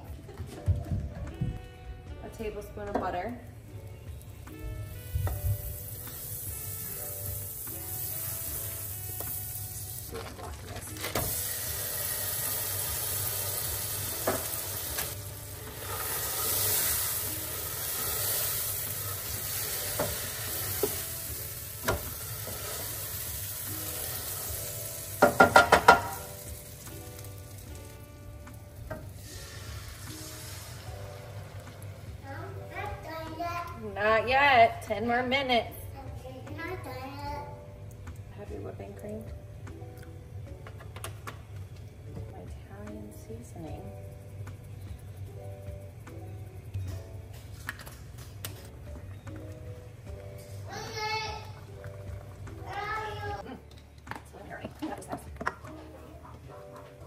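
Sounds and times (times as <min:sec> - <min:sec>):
butter and cheese sizzling in pan: 0:04.2 - 0:34.4.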